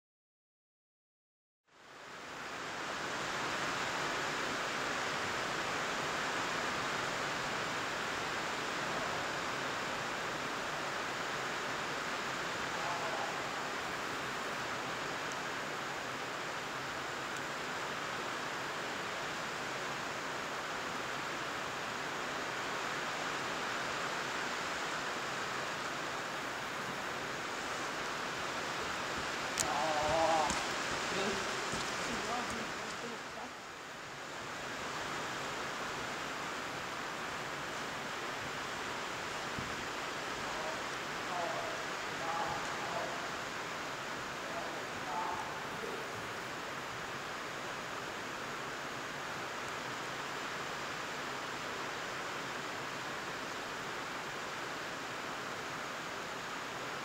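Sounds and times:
heavy rain on a metal roof: 1.7 - 57.0.

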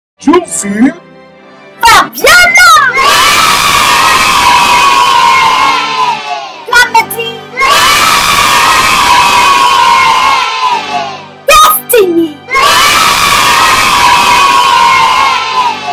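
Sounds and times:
children shouting: 2.3 - 6.7, 7.6 - 11.7, 12.5 - 15.9
children cheering: 2.9 - 6.6, 7.6 - 11.6, 12.5 - 15.9.

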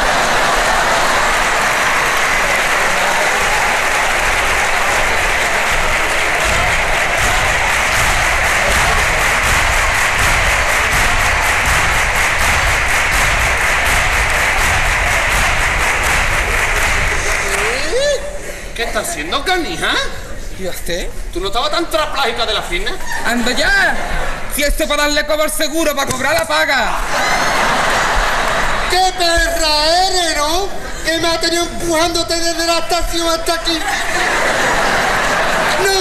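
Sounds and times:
audience applauding: 0.0 - 18.3, 27.0 - 36.0
rhythmic clapping: 0.0 - 18.3, 26.1 - 36.0.

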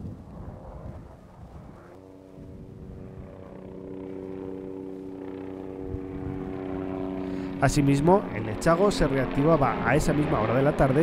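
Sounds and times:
helicopter rotor and engine hum: 0.0 - 11.0.

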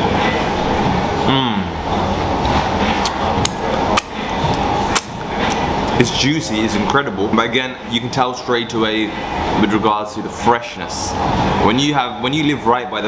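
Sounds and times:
steady loud background noise: 0.0 - 13.0
man humming mmm: 1.2 - 1.8.

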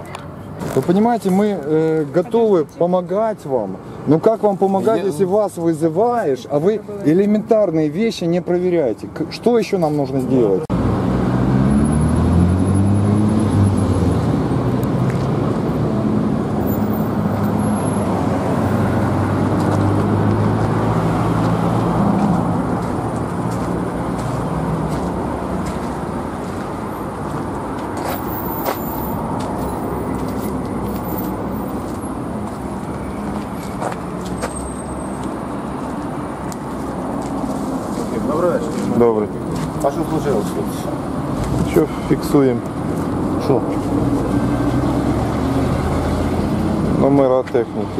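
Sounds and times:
vehicle engine humming: 10.3 - 47.9.

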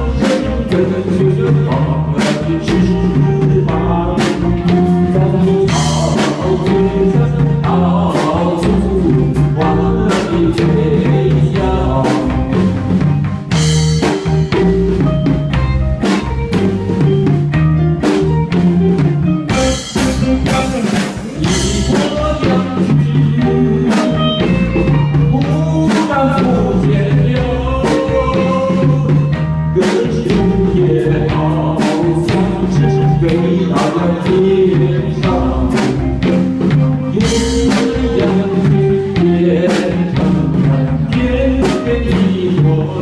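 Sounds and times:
man singing into a microphone: 0.0 - 12.7, 19.5 - 43.0
keyboards: 0.0 - 43.0
steady drum beat: 0.0 - 43.0.

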